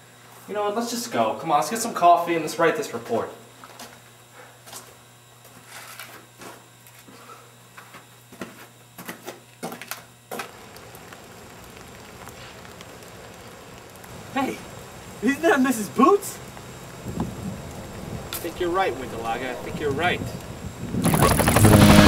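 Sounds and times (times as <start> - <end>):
soft even hiss: 10.5 - 21.0
low steady hum: 10.6 - 22.0.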